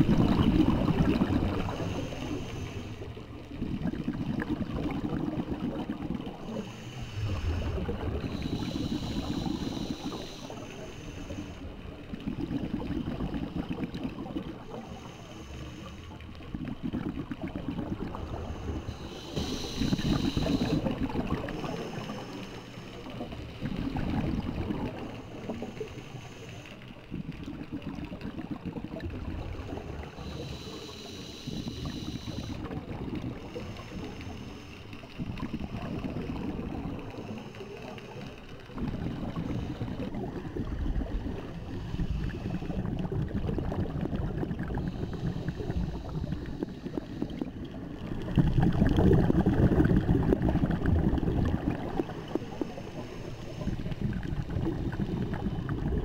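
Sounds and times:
bubbling on exhale: 0.0 - 26.4, 27.1 - 56.0
diver breathing through regulator: 1.5 - 3.2, 6.4 - 12.0, 14.6 - 16.4, 18.0 - 27.0, 29.2 - 56.0.

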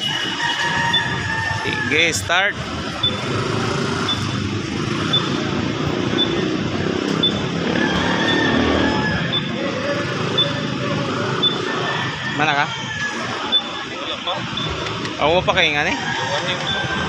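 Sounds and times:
motorcycle engines idling: 0.0 - 17.0
short high beeps: 3.0 - 3.4, 4.0 - 4.5, 5.1 - 5.4, 6.2 - 6.5, 7.2 - 7.5, 9.3 - 9.6, 10.3 - 10.7, 11.4 - 11.7, 14.4 - 14.8.

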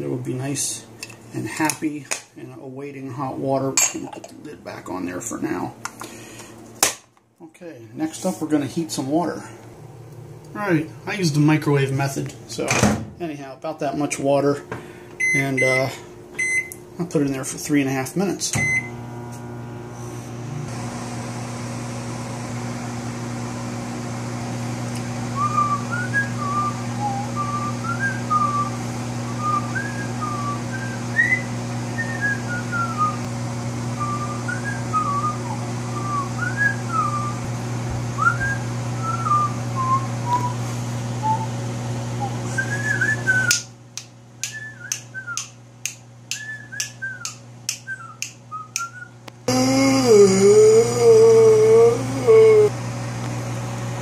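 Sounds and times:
microwave oven hum: 7.6 - 13.2, 13.9 - 54.0
person whistling a tune: 25.4 - 28.7, 29.3 - 33.2, 38.2 - 40.6, 42.2 - 43.6, 44.4 - 45.5, 46.3 - 49.1.

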